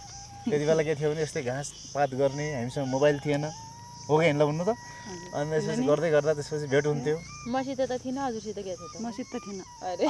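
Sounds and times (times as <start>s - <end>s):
high-pitched insect drone: 0.0s - 10.0s
people talking: 0.4s - 10.0s.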